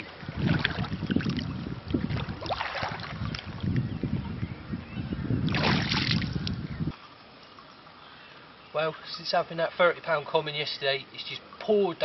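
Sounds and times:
water splashing: 0.0 - 3.9, 5.4 - 6.6
wind rumbling on microphone: 0.0 - 7.0.

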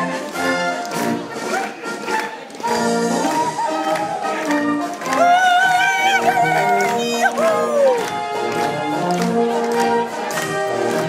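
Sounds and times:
brass band playing folk music: 0.0 - 11.0
person whooping: 5.1 - 8.1.

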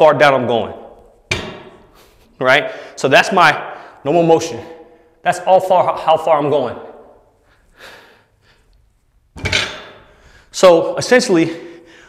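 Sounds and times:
barbell thud on rubber floor: 1.3 - 1.8, 9.4 - 10.0.

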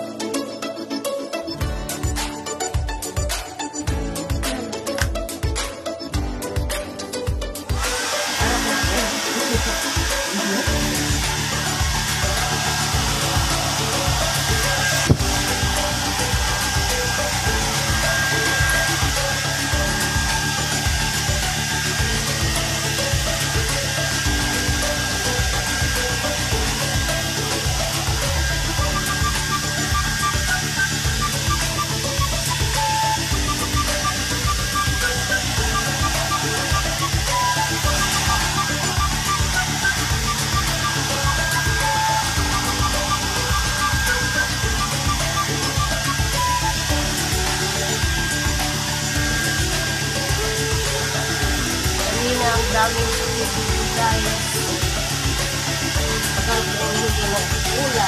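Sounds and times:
background music: 0.0 - 58.0
hair dryer running: 0.8 - 58.0.

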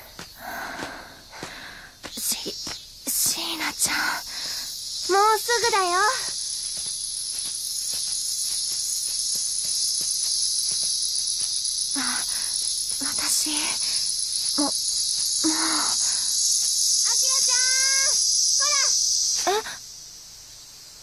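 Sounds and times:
insects chorus: 0.0 - 21.0.

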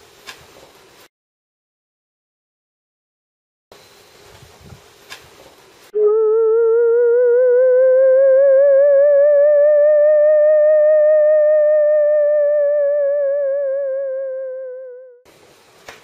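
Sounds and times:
theremin-like electronic tone: 6.0 - 15.2.

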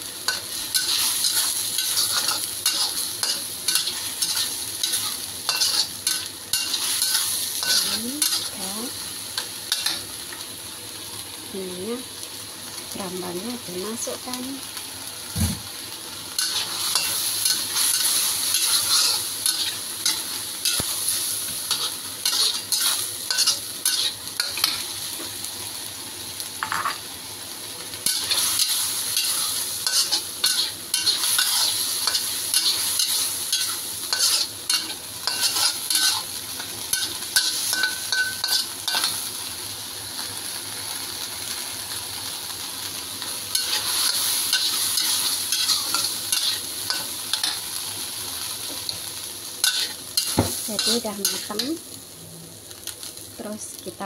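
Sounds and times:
sauce sizzling: 0.0 - 54.0
metal spatula scraping wok: 0.3 - 8.6, 16.4 - 21.0, 21.6 - 24.8, 28.0 - 36.3, 43.5 - 47.6, 49.6 - 51.6.

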